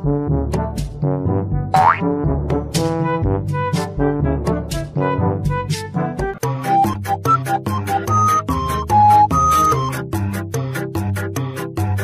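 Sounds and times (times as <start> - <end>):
bouncy comic music: 1.7 - 5.9, 6.5 - 10.0.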